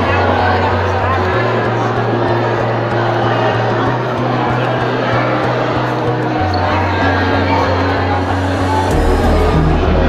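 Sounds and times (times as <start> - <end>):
crowd chatter: 0.0 - 10.0
music with heavy bass beat: 8.0 - 10.0.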